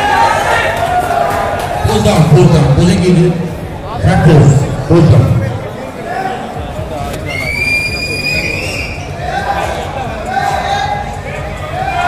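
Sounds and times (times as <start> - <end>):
crowd noise: 0.0 - 12.0
long shrill whistle: 7.3 - 9.1.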